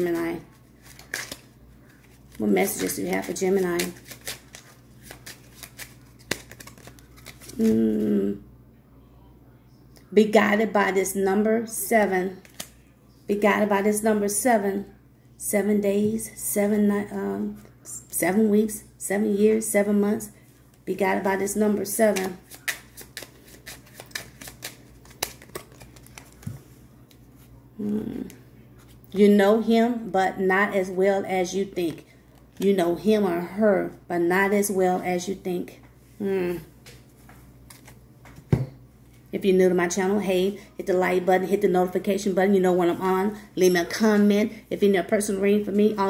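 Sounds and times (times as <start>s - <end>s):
playing cards shuffled by hand: 0.0s - 8.1s, 12.4s - 12.8s, 22.0s - 27.5s, 37.6s - 38.4s.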